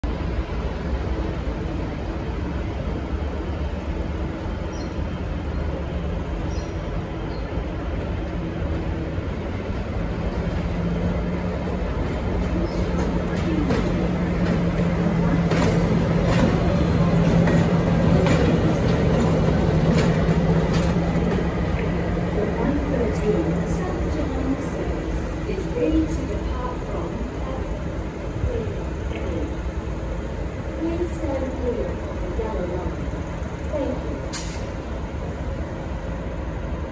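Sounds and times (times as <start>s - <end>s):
diesel locomotive rolling past: 0.0s - 36.9s.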